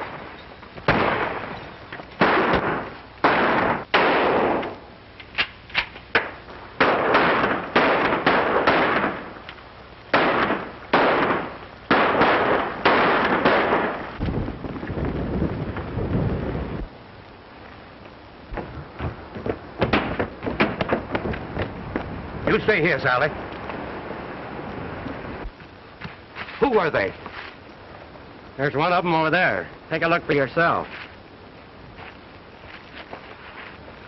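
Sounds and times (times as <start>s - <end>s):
gunshots with ringing tail: 0.9s - 4.8s, 6.2s - 9.4s, 10.1s - 14.2s.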